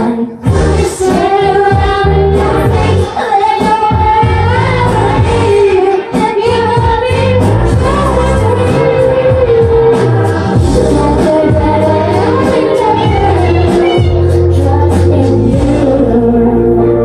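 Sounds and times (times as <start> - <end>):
person singing: 0.0 - 17.0
loud bass line: 0.5 - 3.1, 3.9 - 5.7, 6.5 - 17.0.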